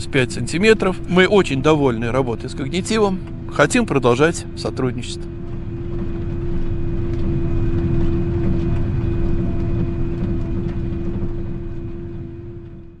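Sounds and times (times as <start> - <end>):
tractor diesel engine running: 0.0 - 13.0.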